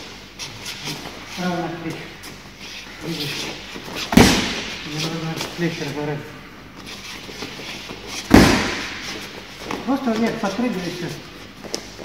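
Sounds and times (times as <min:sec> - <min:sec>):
glove punch smacking mitt: 0:04.1 - 0:04.8, 0:08.3 - 0:09.2.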